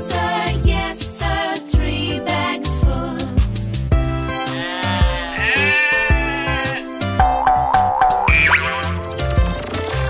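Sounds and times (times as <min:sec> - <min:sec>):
children's song backing: 0:00.0 - 0:03.8
cartoon sheep bleating: 0:04.4 - 0:07.0.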